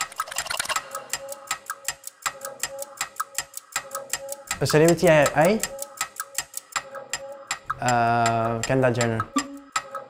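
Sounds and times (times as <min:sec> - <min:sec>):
fast clock ticks: 0:00.0 - 0:10.0.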